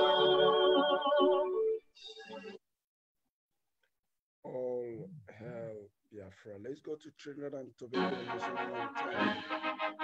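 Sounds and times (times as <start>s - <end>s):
brass band music: 8.0s - 10.0s.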